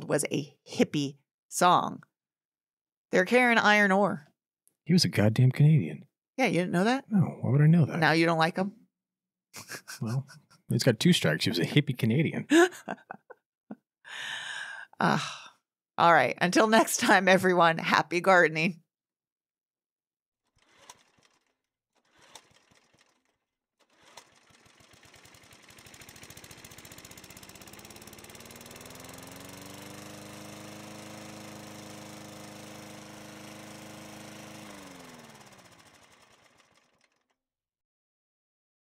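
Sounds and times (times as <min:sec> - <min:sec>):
small motor pulsing: 0:20.4 - 0:37.4.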